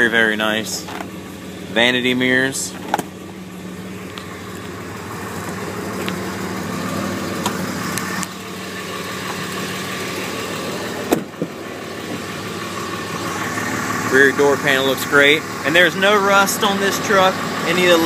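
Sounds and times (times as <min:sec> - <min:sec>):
diesel engine idling: 0:00.0 - 0:18.0.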